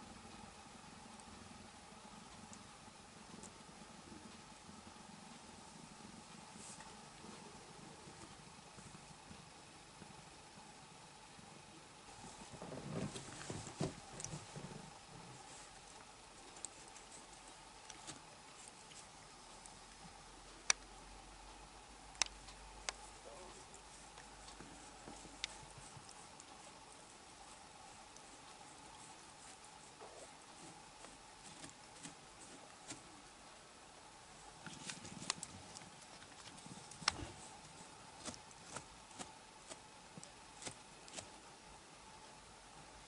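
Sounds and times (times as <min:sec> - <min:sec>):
faint low rustle: 0:11.6 - 0:20.6
soft bumps on a blanket: 0:12.1 - 0:15.5.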